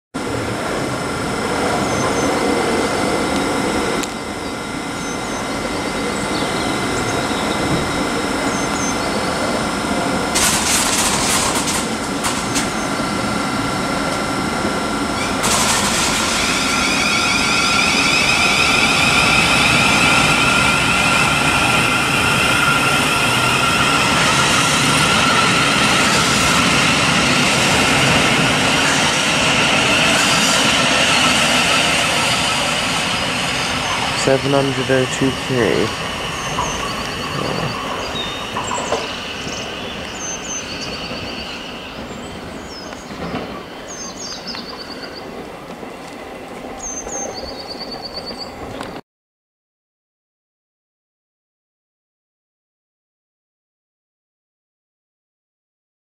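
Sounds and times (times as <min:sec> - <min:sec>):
train electric whine: 0:00.2 - 0:49.0
wheels rumbling on rails: 0:00.2 - 0:49.0.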